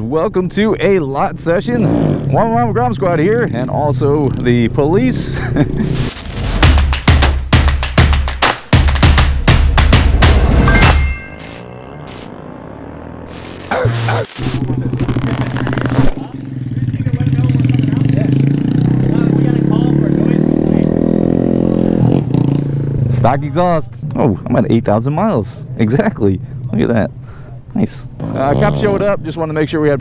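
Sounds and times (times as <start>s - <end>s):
intro music with drum hits: 5.9s - 11.6s
motorcycle engine running: 8.8s - 22.9s.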